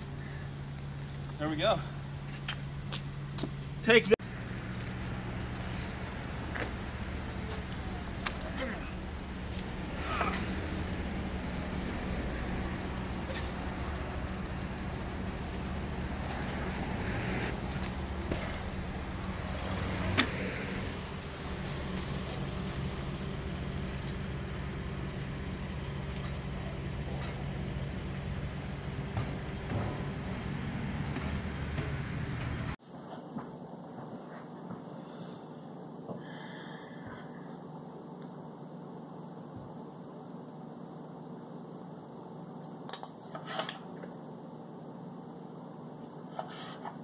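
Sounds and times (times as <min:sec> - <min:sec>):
vehicle engine running: 0:00.0 - 0:32.8.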